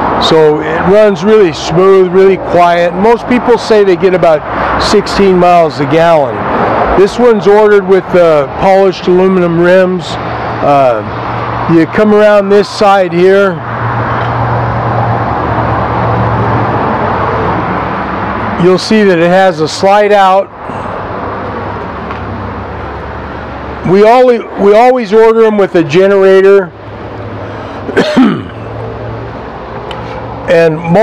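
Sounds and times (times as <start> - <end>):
road traffic hiss: 0.0 - 31.0
man coughing: 27.9 - 28.7.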